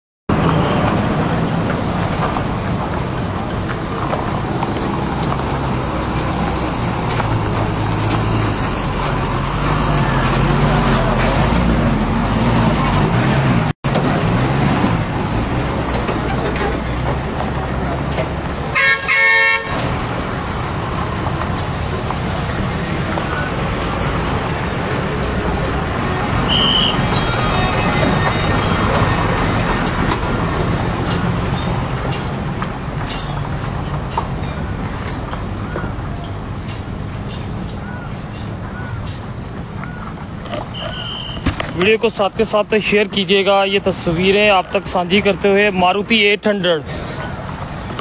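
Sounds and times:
roadside traffic noise: 0:00.3 - 0:48.0
vehicle horn: 0:18.7 - 0:19.9, 0:26.5 - 0:28.1.

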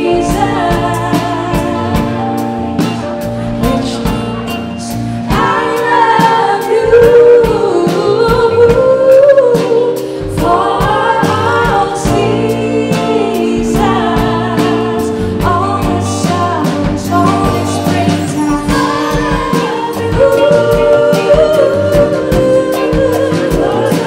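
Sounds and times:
lead vocal singing: 0:00.0 - 0:24.0
live soul band playing: 0:00.0 - 0:24.0.

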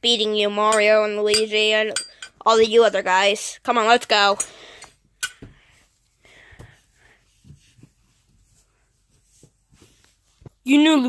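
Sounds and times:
plush toys moved over carpet: 0:05.6 - 0:10.8.

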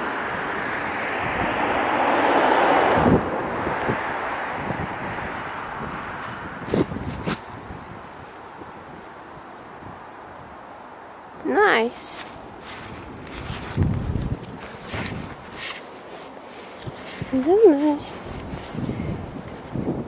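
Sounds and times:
car driving past: 0:00.0 - 0:07.1.

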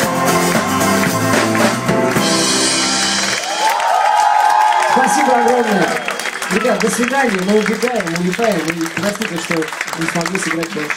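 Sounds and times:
live rock band: 0:00.0 - 0:07.8
crowd cheering: 0:01.6 - 0:10.9.

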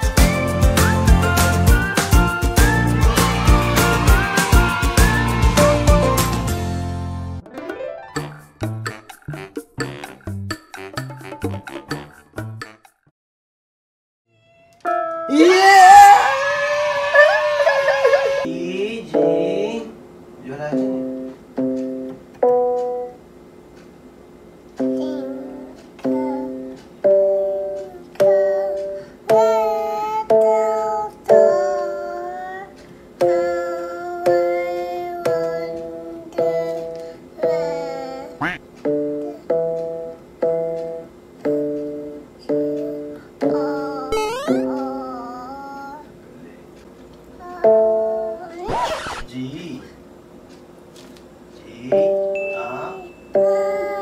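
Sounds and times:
electronic keyboard melody: 0:00.0 - 0:12.5, 0:14.8 - 0:15.6, 0:19.1 - 0:19.7, 0:20.6 - 0:23.2, 0:24.8 - 0:29.7, 0:35.3 - 0:45.4, 0:52.0 - 0:54.0.

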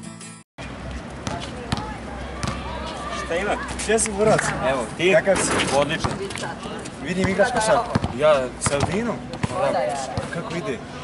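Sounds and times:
basketball bouncing on outdoor court: 0:00.6 - 0:10.7.

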